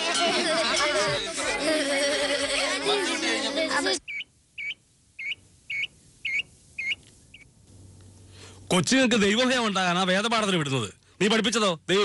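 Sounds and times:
bird chirping: 4.0s - 7.5s.

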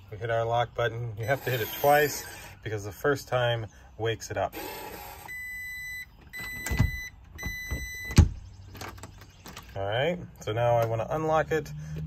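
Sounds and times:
long electronic keypad beeps: 5.3s - 8.2s
lock clicks and clunks: 6.0s - 9.8s.

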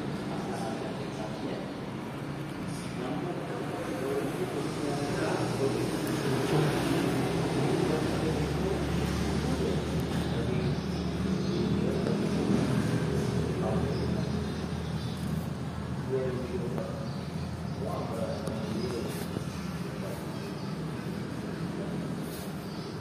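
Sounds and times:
indistinct background voices: 0.0s - 23.0s.

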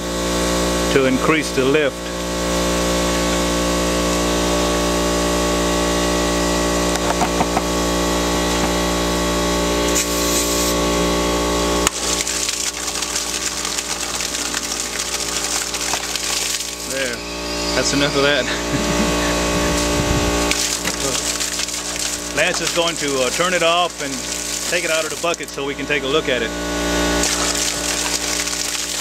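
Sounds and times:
air compressor humming: 0.0s - 29.0s
water and air sputtering from pipe: 6.2s - 29.0s.

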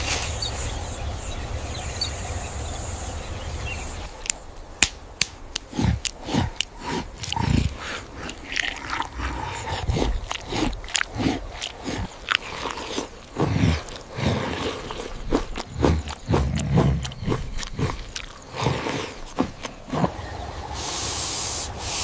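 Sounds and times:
crunching bites: 4.1s - 20.1s
ambient hiss: 20.0s - 22.0s.

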